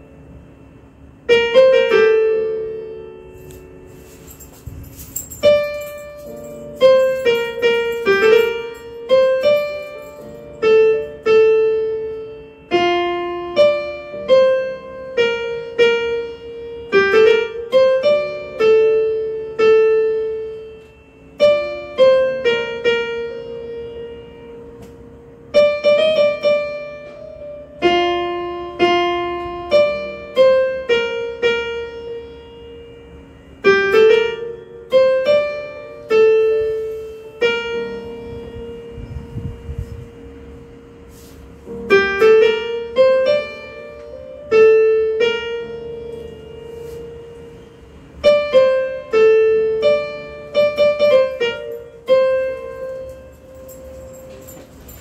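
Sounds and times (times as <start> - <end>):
keyboard piano melody: 0.0 - 55.0.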